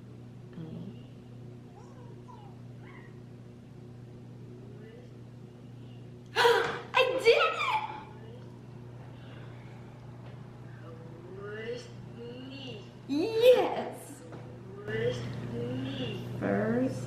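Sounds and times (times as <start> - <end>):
steady low hum: 0.0 - 17.0
girl vocalising excitedly: 6.4 - 8.2.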